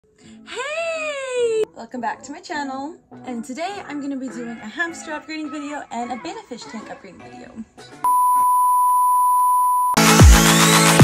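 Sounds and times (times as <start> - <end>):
high-pitched test tone beep: 8.1 - 10.0.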